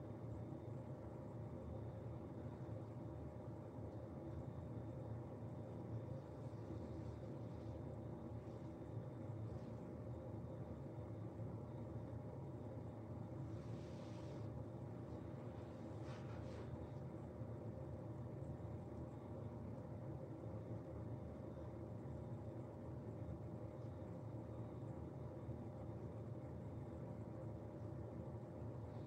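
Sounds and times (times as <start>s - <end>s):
steady low hum: 0.0s - 29.0s
faint soft rustles: 13.4s - 17.2s.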